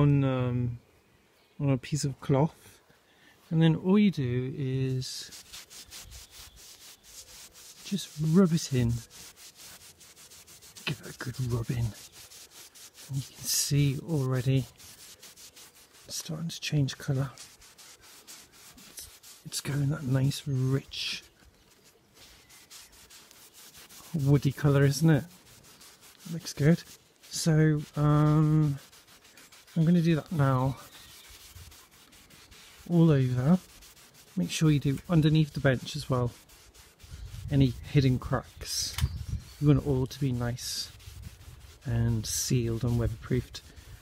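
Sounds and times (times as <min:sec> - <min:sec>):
cloth rubbing on wood: 0:04.7 - 0:44.0.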